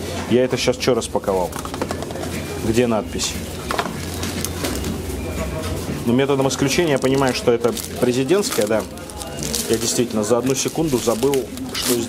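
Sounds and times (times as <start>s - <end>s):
paper wrapper rustling: 3.2s - 12.0s.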